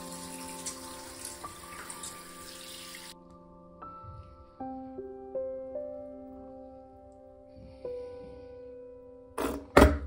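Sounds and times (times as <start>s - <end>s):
shower water running: 0.0s - 3.2s
soft background music: 0.0s - 10.0s.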